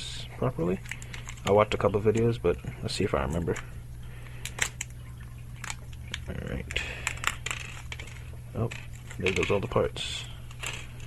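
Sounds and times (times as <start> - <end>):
small parts clattering onto wooden desk: 6.7 - 9.8, 10.5 - 11.0.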